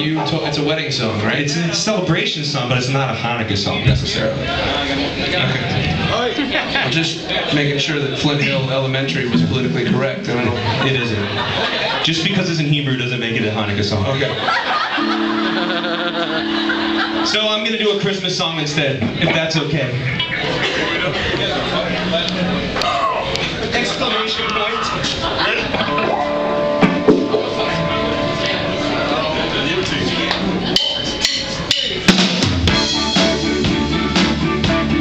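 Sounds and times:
voices in room: 0.0 - 32.2
low two-note amplified instrument tone: 9.2 - 10.0, 15.0 - 17.4, 25.9 - 30.7.

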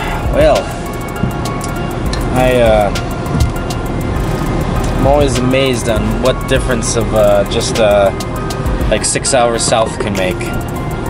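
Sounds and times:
background music: 0.0 - 11.0
road traffic noise: 0.0 - 11.0.

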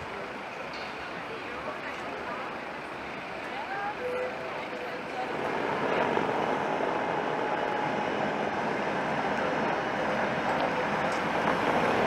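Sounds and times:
faint voices of passers-by: 0.0 - 12.0
traffic hum: 0.0 - 12.0.

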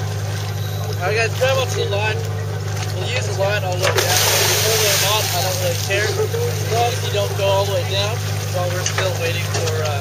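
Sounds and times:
boat engine humming: 0.0 - 10.0
people talking: 0.6 - 10.0
rushing hiss: 4.0 - 5.8.

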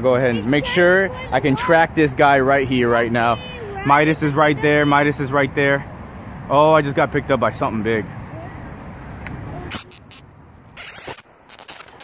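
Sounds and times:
fishing reel scraping: 9.7 - 12.0.

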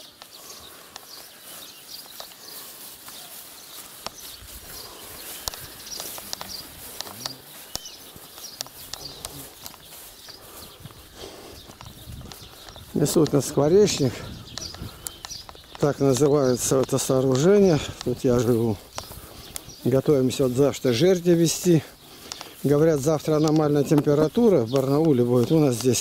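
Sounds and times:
birds chirping: 0.0 - 26.0
faint voices: 0.0 - 26.0
footsteps rustling through tall grass: 0.0 - 26.0.

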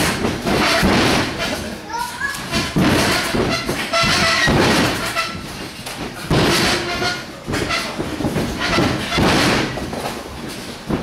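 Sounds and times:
bodies thudding on ring mat: 2.6 - 11.0.

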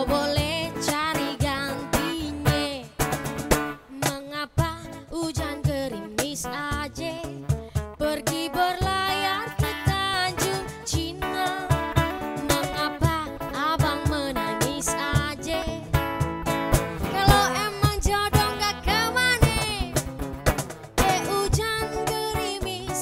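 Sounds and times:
woman singing: 0.0 - 3.0, 3.8 - 16.2, 17.0 - 20.0, 21.0 - 23.0
cajon beats: 0.0 - 23.0
strummed acoustic guitar: 0.0 - 23.0.

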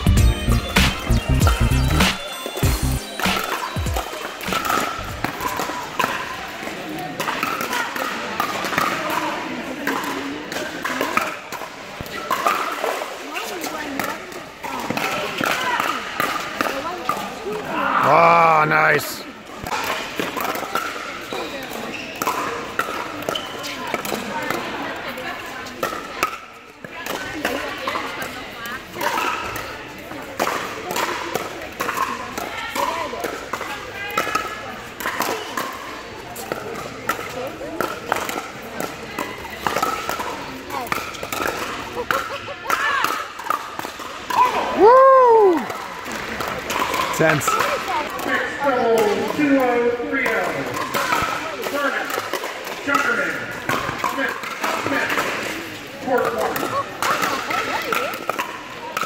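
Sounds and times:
ball bouncing on court: 0.0 - 6.3
players chattering and calling: 0.0 - 59.0
paddles hitting plastic ball: 3.2 - 6.2, 36.4 - 44.6, 48.9 - 59.0
loud shout: 44.4 - 45.7.

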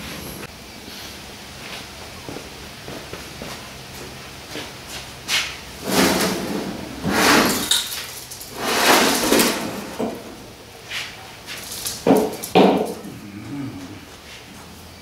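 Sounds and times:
metal wheelbarrow scraping: 5.7 - 13.0
metal wheelbarrow clanking: 5.8 - 10.4.

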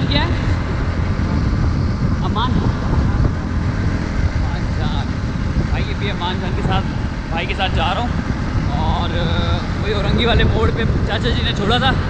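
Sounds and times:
motorcycle engine rumble: 0.0 - 12.0
wind rushing over microphone: 0.0 - 12.0.

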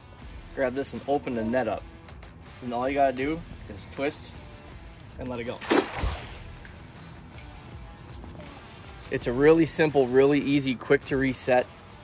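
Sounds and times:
background music: 0.0 - 12.0
net splashing into water: 5.6 - 6.7.

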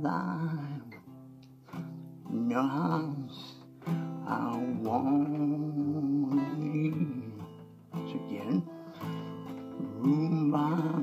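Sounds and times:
acoustic guitar strummed chord: 0.0 - 11.0.

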